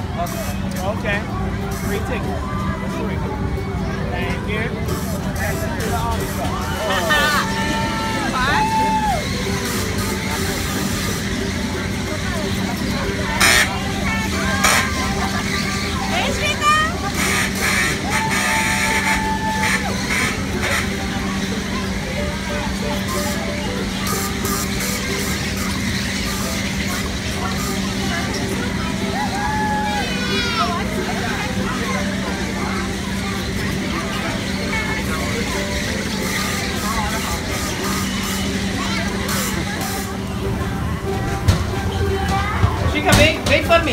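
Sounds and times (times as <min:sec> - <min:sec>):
carousel mechanical hum: 0:00.0 - 0:43.9
voices: 0:00.0 - 0:43.9.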